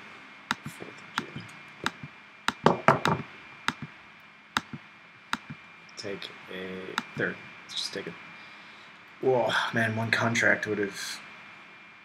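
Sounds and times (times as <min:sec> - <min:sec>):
computer mouse clicks: 0:00.5 - 0:03.9, 0:04.6 - 0:04.8, 0:05.4 - 0:05.6, 0:07.0 - 0:07.2.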